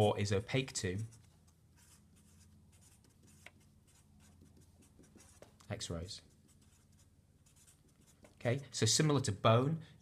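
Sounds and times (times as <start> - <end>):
felt-tip pen writing on paper: 1.8 - 5.5, 6.5 - 8.3.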